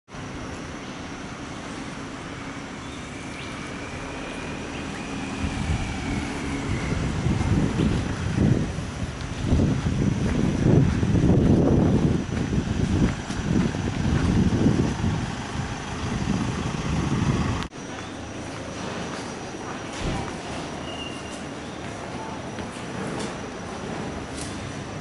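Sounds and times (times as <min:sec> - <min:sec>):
low engine hum: 0:00.1 - 0:25.0.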